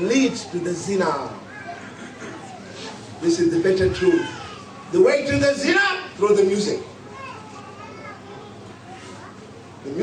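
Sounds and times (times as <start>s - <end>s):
children chattering: 0.0s - 5.2s, 6.4s - 10.0s
room noise: 0.0s - 10.0s.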